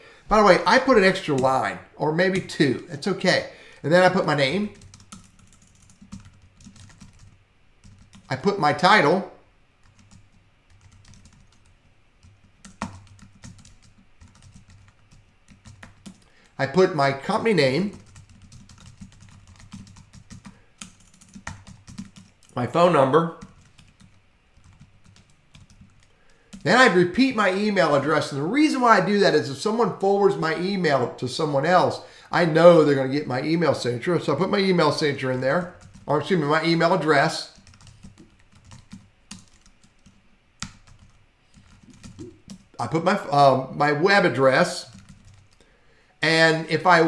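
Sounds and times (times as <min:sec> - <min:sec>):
faint low hum: 0:00.0 - 0:47.0
computer keyboard typing: 0:04.7 - 0:08.3, 0:09.8 - 0:16.5, 0:17.7 - 0:22.6, 0:23.4 - 0:26.6, 0:35.6 - 0:36.1, 0:37.5 - 0:42.7, 0:44.8 - 0:45.6.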